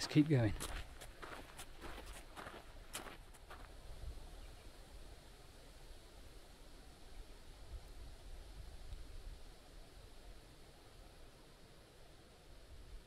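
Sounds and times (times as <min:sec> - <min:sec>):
footsteps on gravel: 0:00.0 - 0:03.8
wind rumble on microphone: 0:03.5 - 0:05.1.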